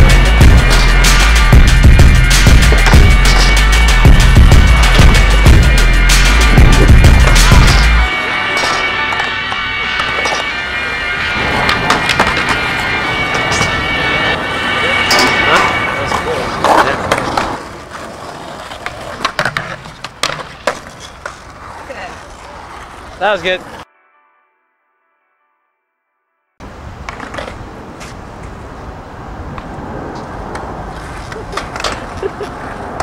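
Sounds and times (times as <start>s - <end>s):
hip-hop track with heavy bass: 0.0s - 16.4s
skateboard wheels rolling on concrete: 0.0s - 23.9s, 26.6s - 33.0s
skateboard clacks: 15.5s - 23.0s, 29.6s - 33.0s.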